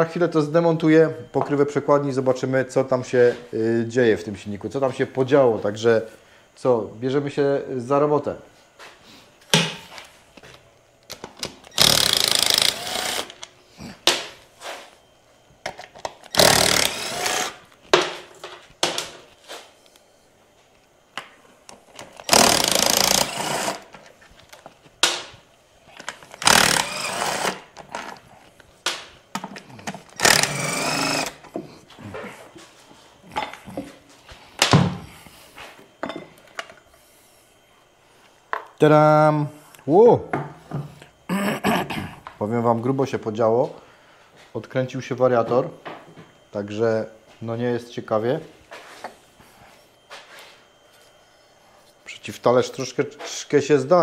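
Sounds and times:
impact wrench undoing bolts: 0:15.7 - 0:17.6, 0:26.0 - 0:28.2.

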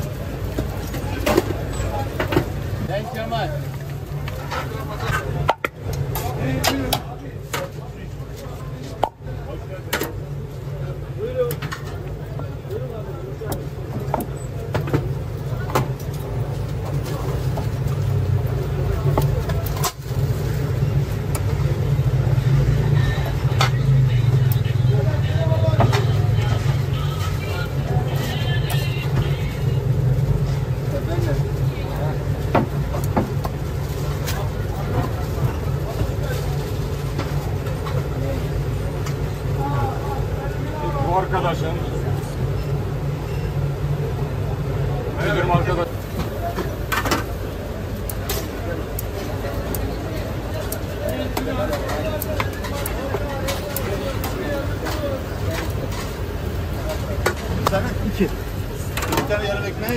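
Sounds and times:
indistinct background voices: 0:00.0 - 0:59.9.

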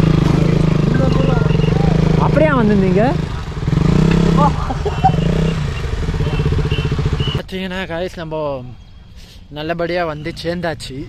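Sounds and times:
motorcycle engine running: 0:00.0 - 0:07.4.

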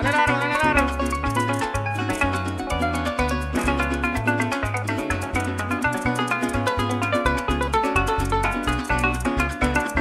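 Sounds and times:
electric bass: 0:00.0 - 0:10.0
maracas shaken: 0:00.0 - 0:10.0
strummed cuatro: 0:00.0 - 0:10.0.

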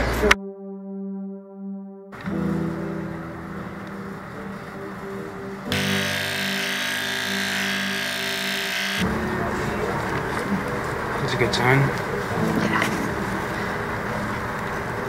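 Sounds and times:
background music with sustained tones: 0:00.0 - 0:15.0
electric hair clippers buzzing: 0:05.7 - 0:09.0.

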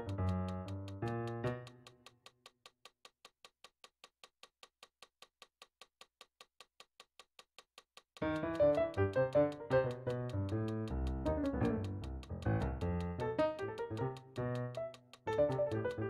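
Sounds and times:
digital piano chords: 0:00.0 - 0:01.9, 0:08.2 - 0:16.0
metronome ticking: 0:00.0 - 0:16.0.

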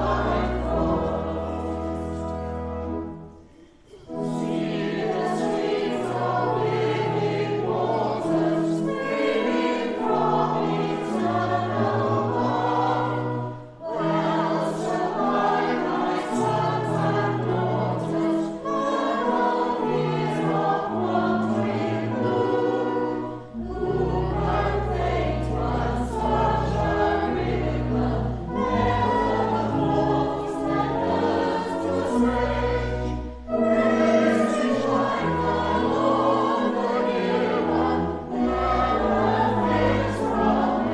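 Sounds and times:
church choir singing in parts: 0:00.0 - 0:40.9.

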